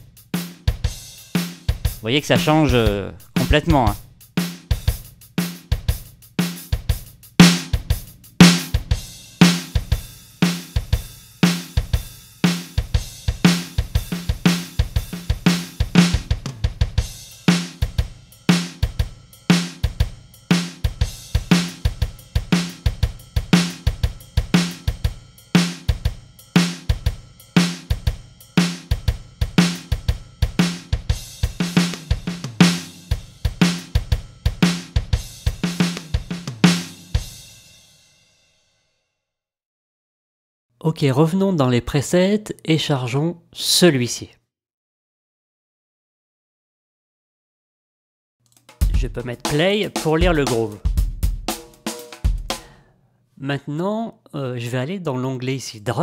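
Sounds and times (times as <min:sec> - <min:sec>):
drum kit playing a groove: 0:00.0 - 0:37.7, 0:48.5 - 0:52.8.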